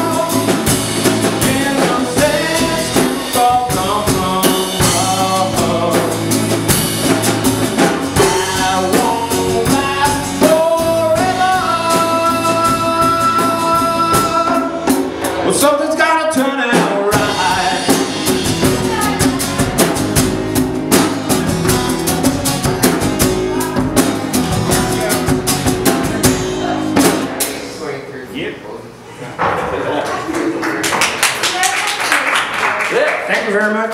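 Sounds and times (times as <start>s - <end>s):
man singing: 0.0s - 6.8s, 7.8s - 19.2s
strummed acoustic guitar: 0.0s - 27.7s
drum kit: 0.0s - 27.8s.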